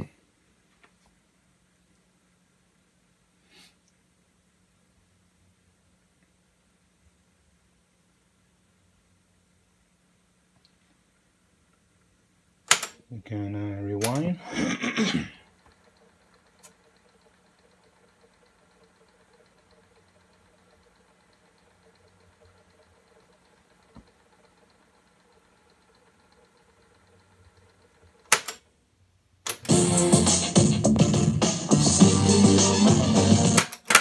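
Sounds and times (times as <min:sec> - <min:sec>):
cassette deck whirring: 0:11.6 - 0:28.7, 0:29.4 - 0:34.0
music from speakers: 0:29.7 - 0:33.6.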